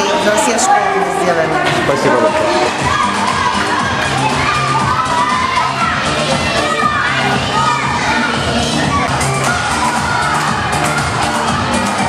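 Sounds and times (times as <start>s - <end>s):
children shouting and cheering: 0.0s - 12.0s
music playing: 0.0s - 12.0s.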